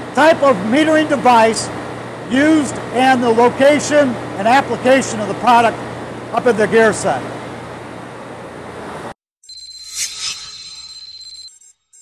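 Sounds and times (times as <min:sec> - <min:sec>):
steady high tone: 0:09.4 - 0:12.0
rising swoosh: 0:09.8 - 0:11.5.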